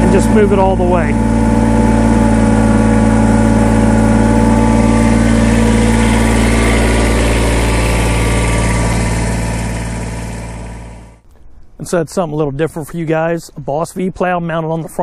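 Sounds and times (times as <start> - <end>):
tractor diesel engine idling: 0.0 - 11.2.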